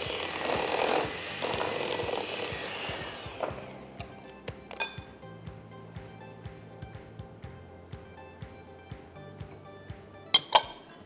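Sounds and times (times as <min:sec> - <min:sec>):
electric hand mixer beating dough: 0:00.0 - 0:04.6
background music with steady beat: 0:00.0 - 0:11.0.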